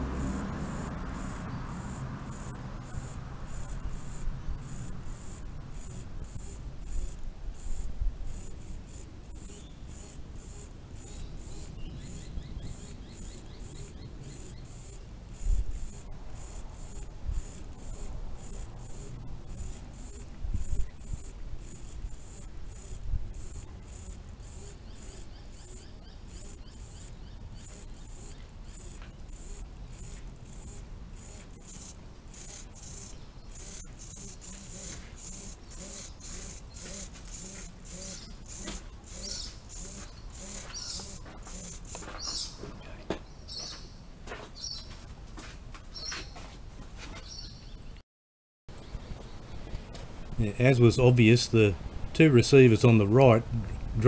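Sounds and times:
insects chirping: 0:00.0 - 0:42.6.

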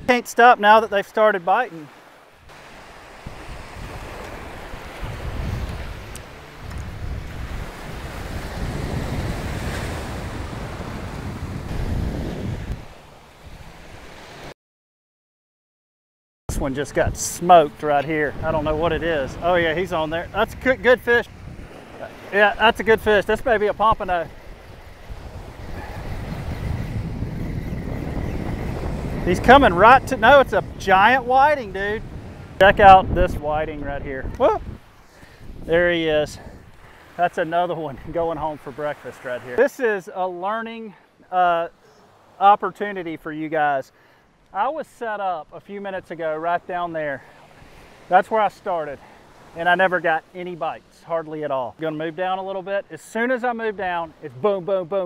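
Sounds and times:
surf washing on beach: 0:00.0 - 0:14.5, 0:16.5 - 0:55.0
wind buffeting microphone: 0:02.4 - 0:14.2, 0:16.5 - 0:37.0, 0:37.8 - 0:38.8.

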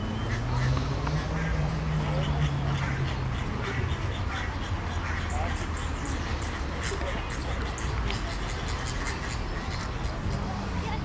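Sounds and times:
flamingos calling: 0:00.2 - 0:10.5.

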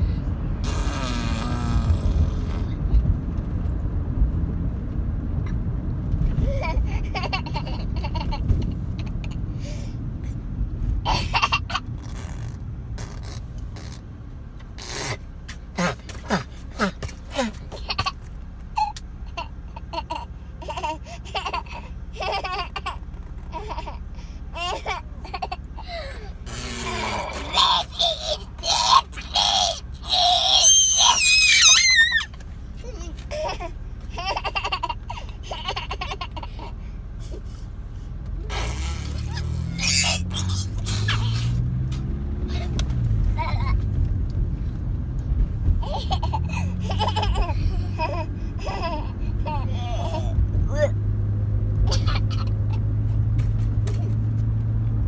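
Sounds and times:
car cabin rumble: 0:00.0 - 0:55.0
car engine accelerating: 0:00.0 - 0:55.0
child laughing: 0:06.4 - 0:09.4, 0:11.1 - 0:11.9, 0:15.8 - 0:18.2, 0:18.8 - 0:36.8, 0:38.5 - 0:41.6, 0:42.5 - 0:44.0, 0:45.8 - 0:50.9, 0:51.8 - 0:52.9
child playful vocal noises: 0:26.0 - 0:33.5, 0:48.7 - 0:51.0
child high squeal: 0:26.8 - 0:32.4, 0:39.3 - 0:41.4.

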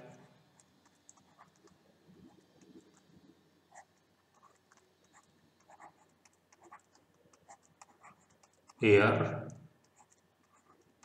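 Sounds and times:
stylus clicking on pen tablet: 0:00.6 - 0:03.1, 0:03.7 - 0:08.8, 0:09.4 - 0:11.0
man speaking: 0:08.8 - 0:09.5.

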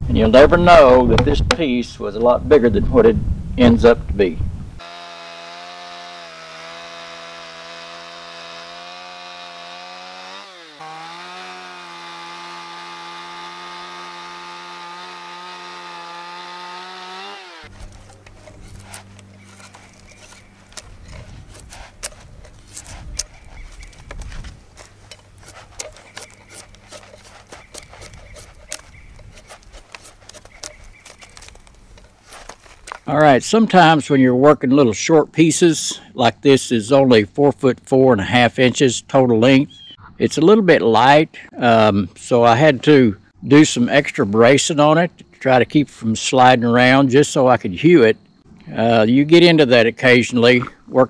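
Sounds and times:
chainsaw running: 0:04.8 - 0:33.0
drawknife scraping wood: 0:04.8 - 0:33.1.

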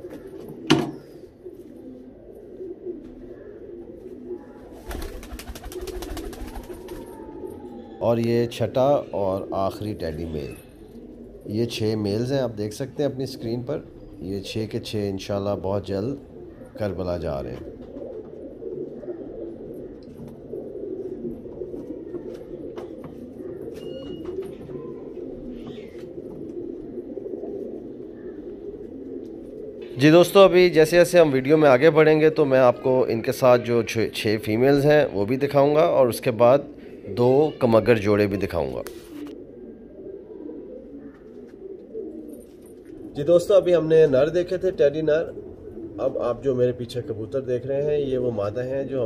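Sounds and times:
pigeons cooing: 0:00.0 - 0:49.0.

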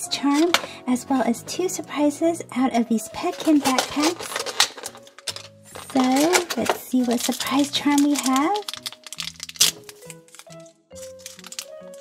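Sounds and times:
woman's voice: 0:00.0 - 0:04.4, 0:05.7 - 0:08.7
plastic clicks and rattles: 0:03.3 - 0:12.0.

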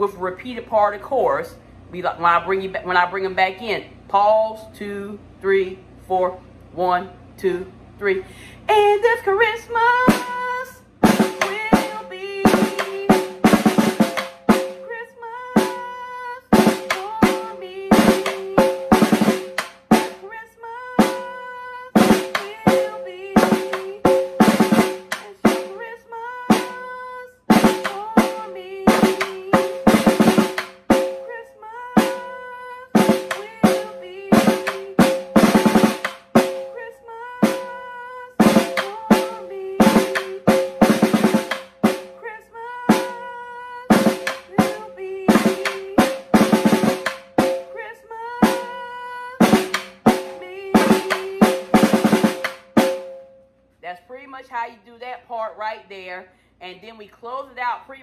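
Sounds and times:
snare drum strokes and rolls: 0:11.0 - 0:14.8, 0:16.6 - 0:20.2, 0:22.0 - 0:25.7, 0:27.5 - 0:31.2, 0:33.0 - 0:36.6, 0:38.4 - 0:42.1, 0:43.9 - 0:47.7, 0:49.4 - 0:53.1.

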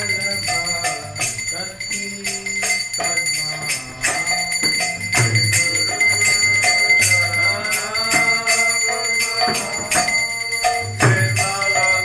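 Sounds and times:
bell ringing: 0:00.0 - 0:12.0
hand cymbals struck: 0:00.0 - 0:12.0.

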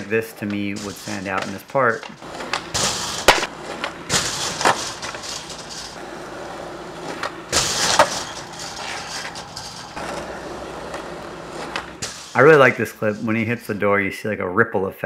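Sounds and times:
skateboard clattering impacts: 0:00.0 - 0:12.8
skateboard wheels rolling on concrete: 0:00.0 - 0:14.1.

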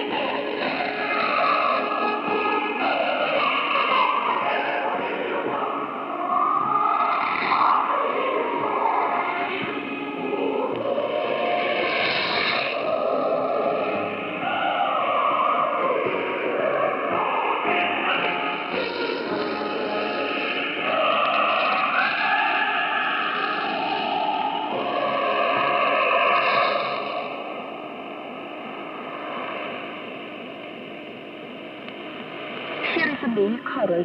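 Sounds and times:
muffled radio music: 0:00.0 - 0:34.0.

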